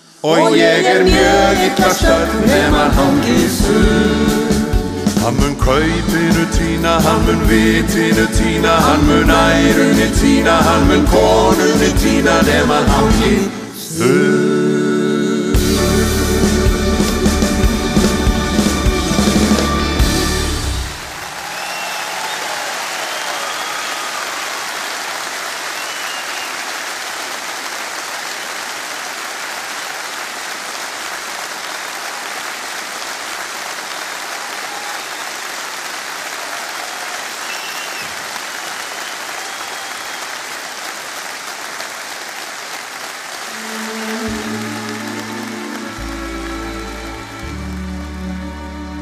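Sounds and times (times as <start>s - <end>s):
audience applauding: 0.0s - 5.2s, 17.0s - 49.0s
orchestra strings slow piece: 0.0s - 21.1s, 43.5s - 49.0s
whistles from audience: 21.2s - 26.8s, 34.4s - 35.4s, 37.3s - 40.5s.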